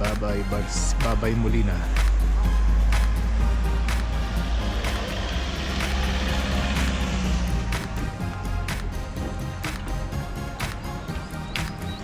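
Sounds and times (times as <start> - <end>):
background music with beat: 0.0 - 12.0
car driving rumble: 0.0 - 12.0.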